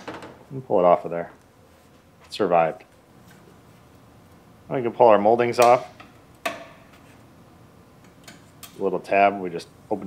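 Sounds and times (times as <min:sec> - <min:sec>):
man speaking: 0:00.5 - 0:01.4, 0:04.7 - 0:06.0, 0:08.8 - 0:10.0.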